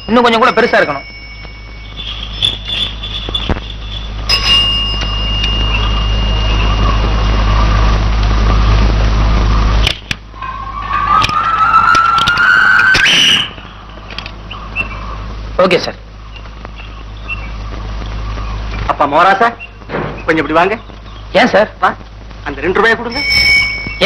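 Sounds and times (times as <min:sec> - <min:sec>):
high whistle-like tone: 0:00.0 - 0:07.6, 0:10.4 - 0:13.8, 0:23.1 - 0:24.0
low hum: 0:00.0 - 0:24.0.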